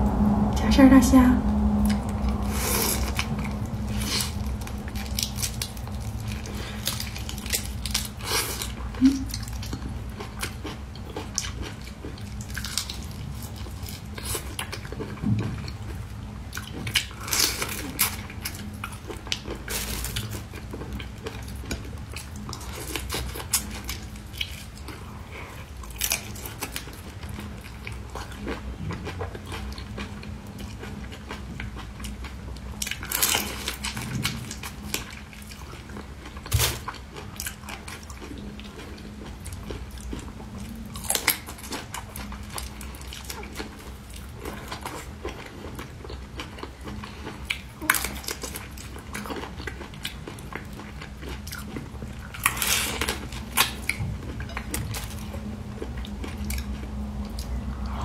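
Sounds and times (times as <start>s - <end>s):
steady low hum: 0.0s - 58.0s
crunchy chewing of prawns: 1.8s - 58.0s.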